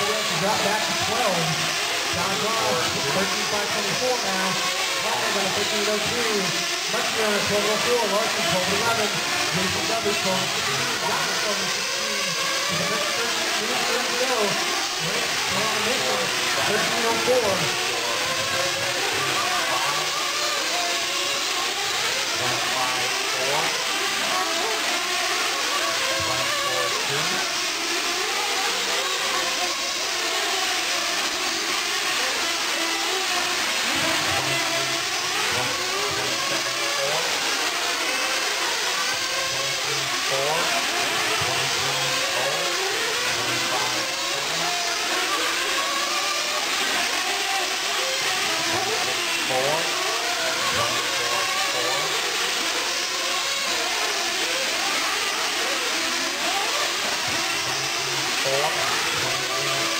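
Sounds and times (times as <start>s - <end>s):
small racing engines revving: 0.0s - 59.9s.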